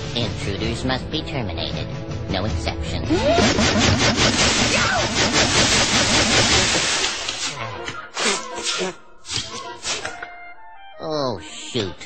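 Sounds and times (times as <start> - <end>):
water spray: 3.3 - 7.6, 8.2 - 10.1.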